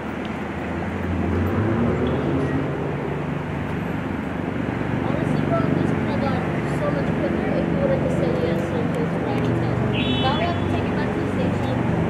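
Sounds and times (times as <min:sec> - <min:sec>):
idling vehicle engines hum: 0:00.0 - 0:12.0
street traffic noise: 0:00.0 - 0:12.0.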